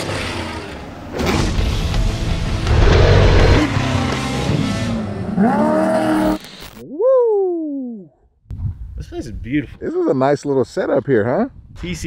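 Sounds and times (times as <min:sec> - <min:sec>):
dirt and tyre noise: 0:00.0 - 0:06.8
race vehicle engine revving: 0:02.5 - 0:05.7.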